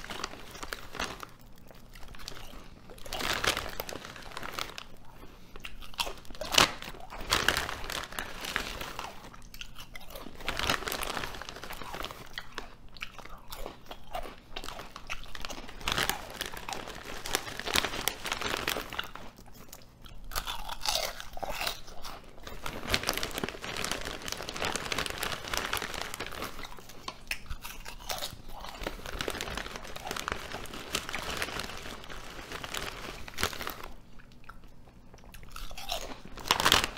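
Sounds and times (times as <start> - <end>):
potato chips crunching: 0.0 - 36.9.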